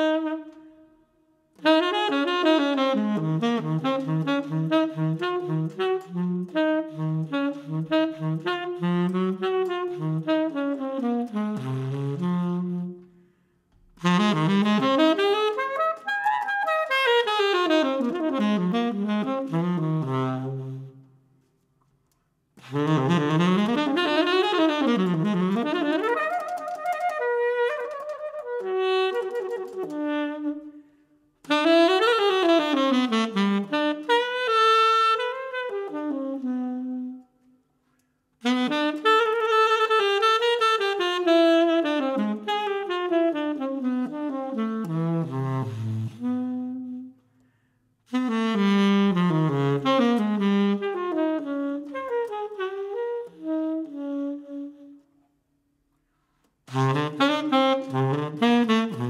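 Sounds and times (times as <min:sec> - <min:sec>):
saxophone playing jazz: 0:00.0 - 0:13.2, 0:13.9 - 0:21.2, 0:22.6 - 0:37.5, 0:38.4 - 0:47.3, 0:48.1 - 0:55.2, 0:56.6 - 0:59.0.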